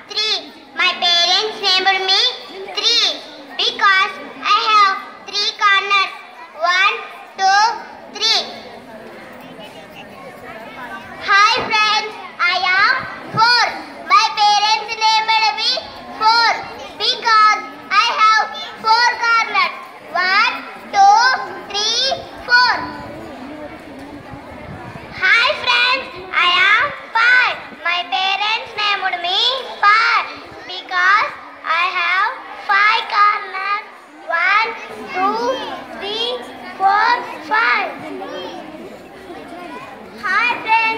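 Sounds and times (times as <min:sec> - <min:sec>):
children speaking through loudspeaker: 0:00.0 - 0:40.9.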